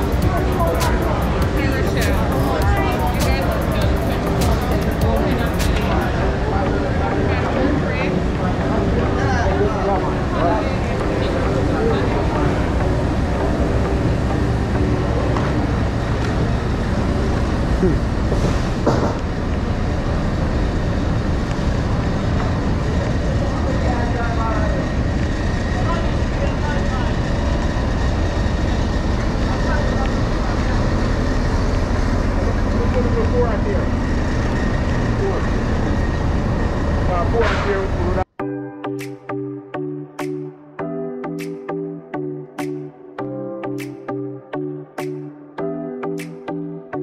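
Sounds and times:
indistinct voices: 0:00.0 - 0:18.6
large engine running: 0:00.0 - 0:38.2.

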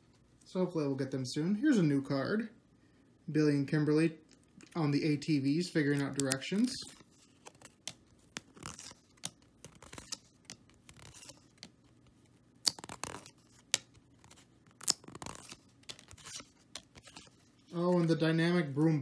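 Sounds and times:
trading cards shuffling: 0:04.4 - 0:19.0
card snaps: 0:06.0 - 0:06.7.

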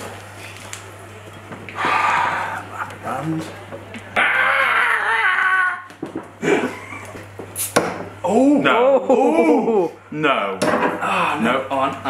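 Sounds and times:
man straining whine: 0:04.2 - 0:06.7.

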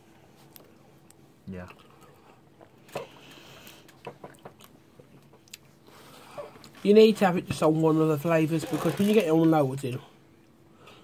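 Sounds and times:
mouth and chewing sounds: 0:00.5 - 0:05.9.

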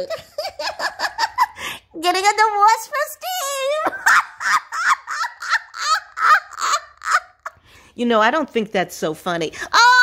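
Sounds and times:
woman laughing: 0:00.0 - 0:01.8, 0:03.5 - 0:07.6.

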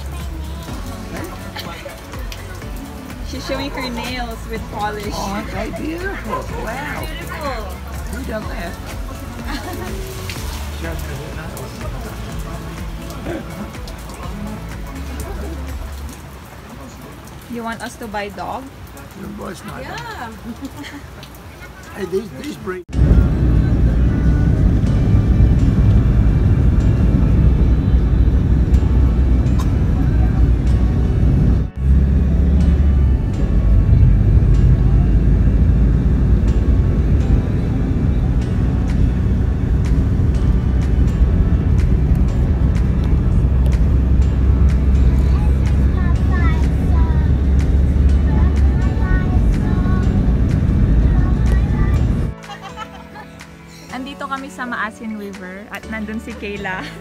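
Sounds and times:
moving vehicle rumble: 0:00.0 - 0:17.6, 0:22.8 - 0:53.9
music playing: 0:00.0 - 0:20.6, 0:21.2 - 0:57.0.

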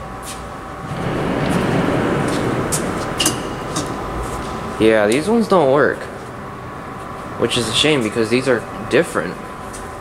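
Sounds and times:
steady hum: 0:00.0 - 0:10.0
vehicle passing rumble: 0:00.8 - 0:08.9.

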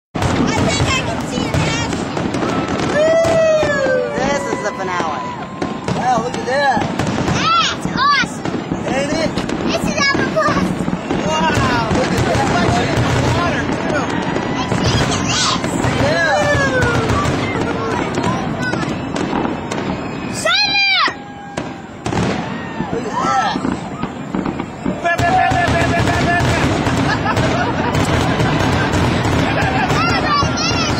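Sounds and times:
fireworks bangs and crackles: 0:00.1 - 0:30.9.

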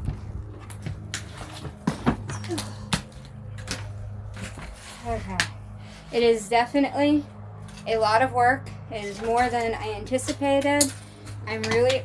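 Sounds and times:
footsteps: 0:00.0 - 0:06.4
steady low hum: 0:00.0 - 0:12.0.

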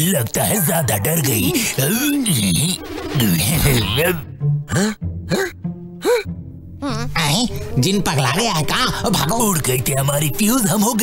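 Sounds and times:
background music with low notes: 0:00.0 - 0:11.0.

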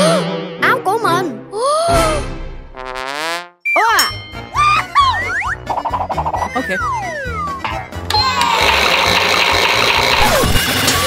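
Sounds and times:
toy washing machine whirring: 0:08.1 - 0:11.0.

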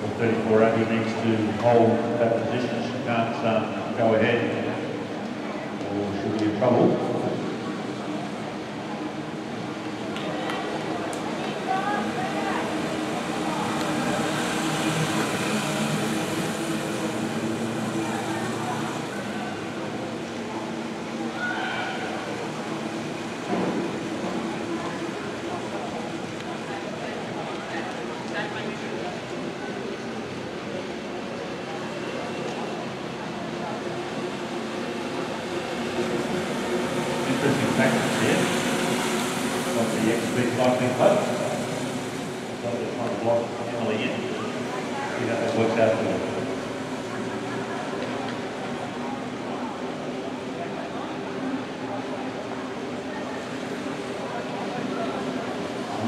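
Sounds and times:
people talking: 0:00.0 - 0:04.8, 0:05.4 - 0:08.6, 0:37.1 - 0:38.6, 0:39.7 - 0:41.7, 0:42.6 - 0:56.0.

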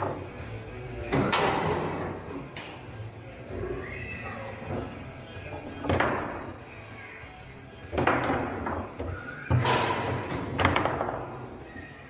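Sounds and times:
foosball rods banging: 0:00.0 - 0:00.4, 0:01.0 - 0:02.9, 0:04.5 - 0:06.7, 0:07.8 - 0:11.9.

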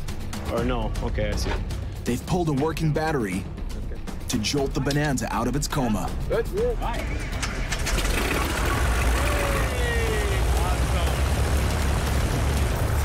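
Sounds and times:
piston aircraft engine droning: 0:07.2 - 0:13.0.

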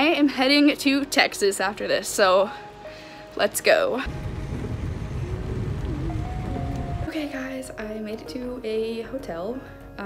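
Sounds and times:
road and wind noise rumble: 0:04.0 - 0:07.2
heavy rain on car: 0:04.1 - 0:07.1.

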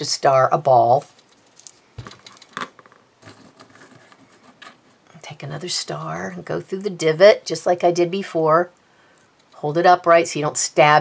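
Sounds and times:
paper stars rustling: 0:00.8 - 0:05.0.

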